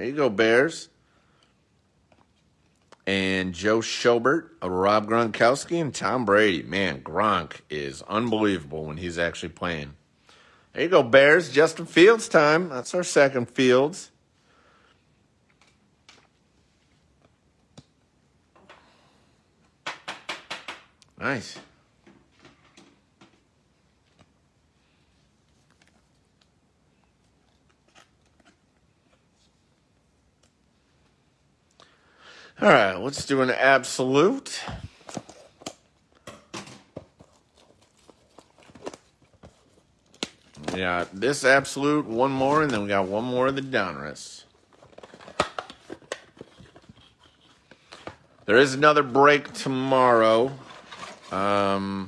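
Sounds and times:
cards handled with crisp crinkles: 0:25.2 - 0:30.6, 0:37.0 - 0:51.8
card handling ticks and rustles: 0:37.0 - 0:43.8.

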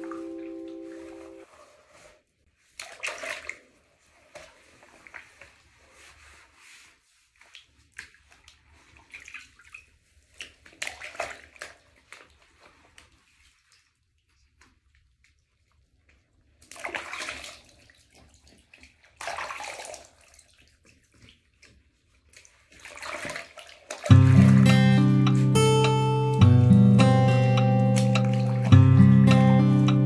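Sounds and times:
bath water sloshing and splashing: 0:02.5 - 0:25.6, 0:27.8 - 0:28.8.

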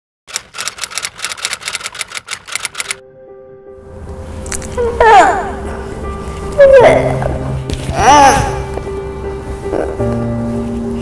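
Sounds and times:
rapid sharp clicks: 0:00.3 - 0:03.0
held musical chord: 0:03.0 - 0:07.8.

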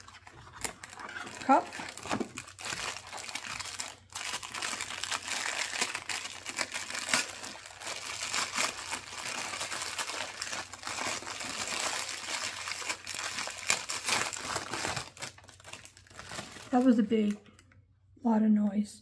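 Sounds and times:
crinkly packaging crackling: 0:00.0 - 0:17.8.

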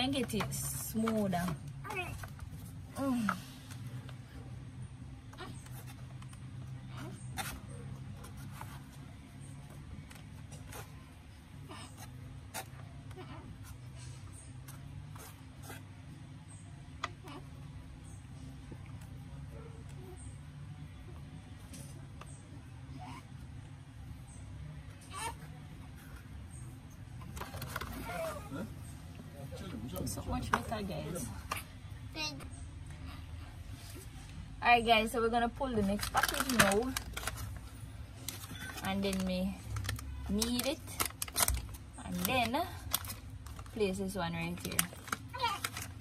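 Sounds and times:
foil pouch crinkling: 0:35.7 - 0:46.0.

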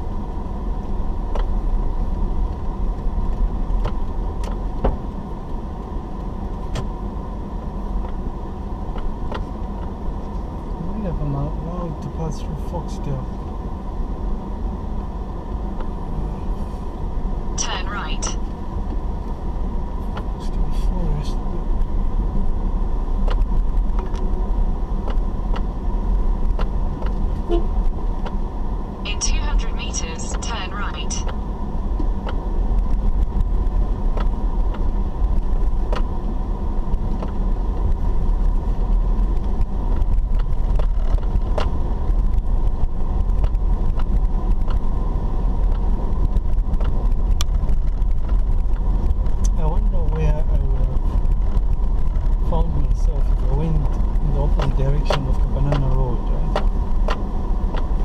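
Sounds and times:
car driving on dirt road: 0:00.0 - 0:58.0.

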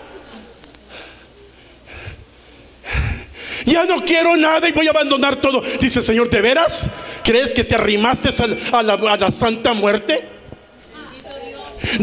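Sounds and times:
man breathing into microphone: 0:00.9 - 0:03.6.

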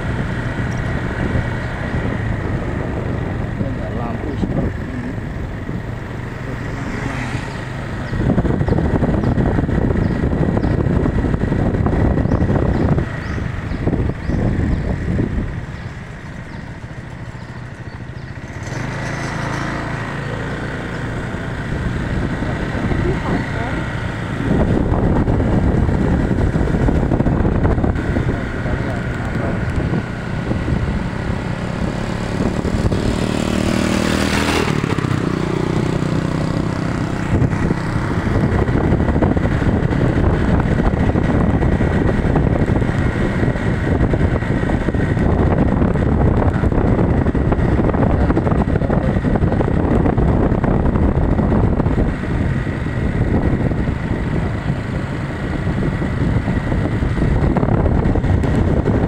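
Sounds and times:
motorcycle engine running: 0:00.0 - 0:59.0
wind and road noise: 0:00.0 - 0:59.0
vehicle passing by: 0:01.2 - 0:09.2, 0:17.7 - 0:41.4.

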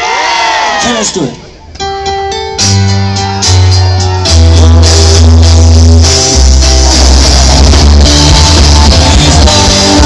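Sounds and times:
electric guitar: 0:01.8 - 0:10.0
held bass notes: 0:01.8 - 0:10.0.

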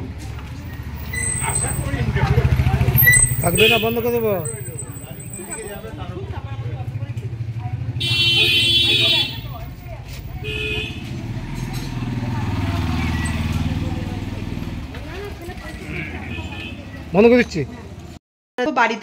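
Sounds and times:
scooter engine idling and revving: 0:00.0 - 0:18.2
vehicle horn: 0:03.0 - 0:05.8, 0:08.0 - 0:11.4, 0:15.8 - 0:17.0.

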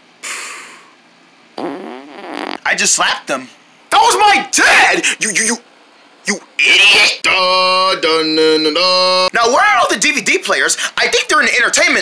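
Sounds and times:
breathy vocal hiss: 0:00.2 - 0:01.0
wavering whiny voice: 0:06.6 - 0:09.3.

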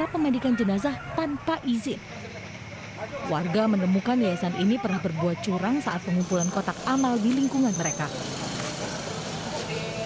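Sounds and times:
street noise: 0:00.0 - 0:10.0
motorbike engine passing: 0:06.2 - 0:10.0.

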